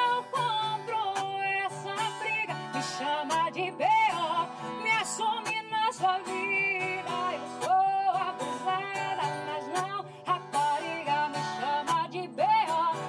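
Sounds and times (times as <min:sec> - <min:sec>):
acoustic guitar: 0:00.0 - 0:13.0
woman singing: 0:00.0 - 0:13.0.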